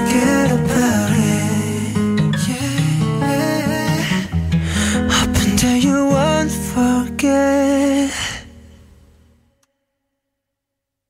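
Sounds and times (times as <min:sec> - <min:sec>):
breathy exhale: 0:04.0 - 0:05.4.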